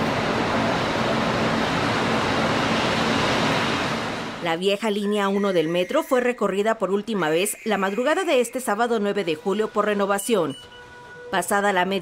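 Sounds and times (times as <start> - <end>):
train pulling in rushing: 0.0 - 4.4.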